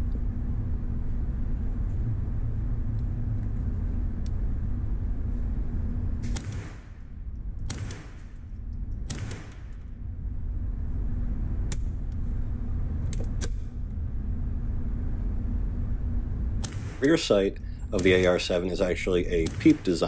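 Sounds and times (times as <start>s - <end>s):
low rumble: 0.0s - 20.0s
rifle shots cracking: 6.2s - 8.4s, 9.1s - 9.9s, 16.6s - 20.0s.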